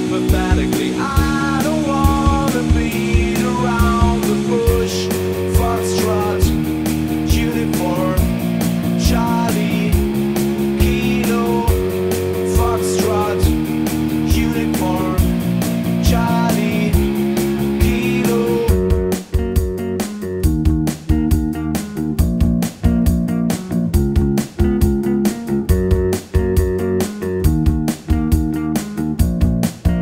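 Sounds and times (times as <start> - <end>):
drums keeping steady beat: 0.0 - 30.0
electric bass playing: 0.0 - 30.0
guitar chords: 0.0 - 30.0.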